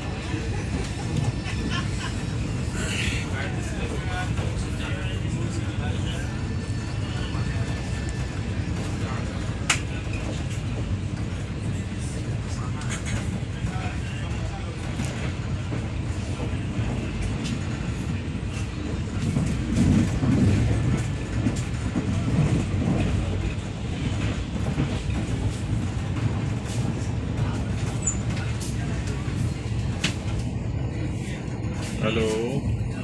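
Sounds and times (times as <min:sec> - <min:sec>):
train rumble: 0:00.0 - 0:33.0.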